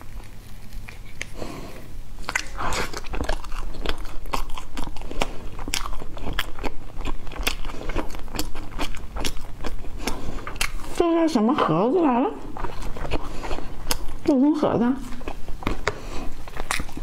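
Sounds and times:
person chewing crunchy food: 0.0 - 11.8, 12.4 - 17.0.

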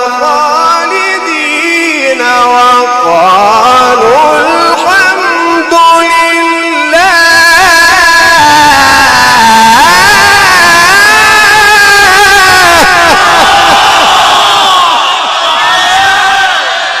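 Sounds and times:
man reciting melodically: 0.0 - 13.8.

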